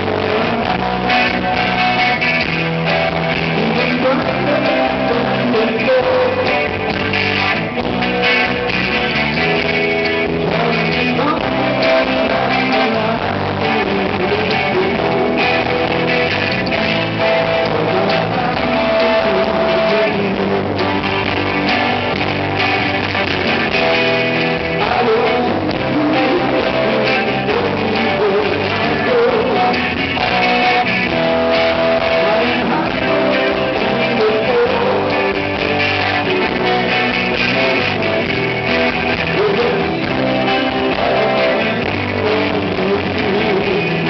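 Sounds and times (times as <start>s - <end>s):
bass guitar: 0.0s - 44.0s
electric guitars: 0.0s - 44.0s
live rock band playing: 0.0s - 44.0s.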